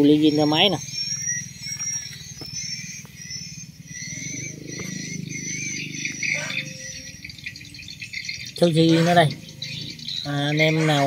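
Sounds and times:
small birds chirping: 0.0 - 11.0
steady low rumble: 0.3 - 10.6.

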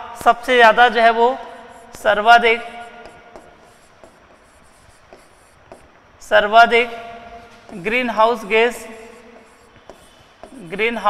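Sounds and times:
pen scratching on display board: 1.5 - 6.2, 7.4 - 11.0
pen tapping on display board: 3.0 - 6.0, 9.4 - 10.6.

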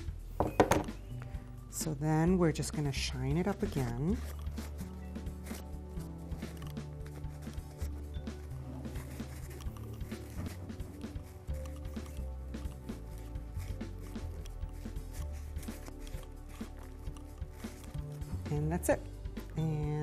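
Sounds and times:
background music with bass: 0.0 - 20.0
light beat: 0.0 - 20.0.

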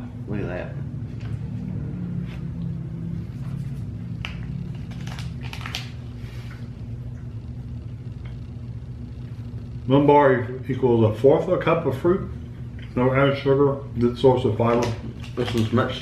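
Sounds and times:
steady low hum: 0.0 - 16.0
snack wrapper crinkling: 4.2 - 6.4, 14.8 - 16.0.

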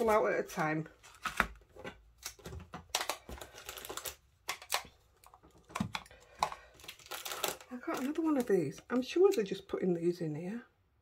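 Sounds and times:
plastic packets crinkling: 0.0 - 9.4.

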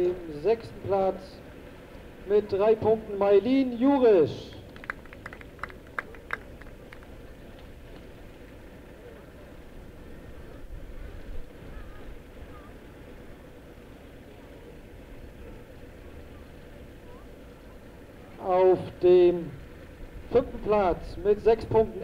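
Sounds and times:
low outdoor rumble: 0.0 - 22.0
faint voices: 4.1 - 22.0
hand claps: 4.5 - 7.1.

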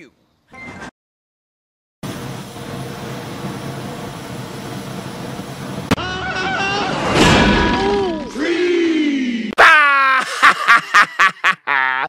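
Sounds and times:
cartoon flamethrower rushing: 2.0 - 8.3.

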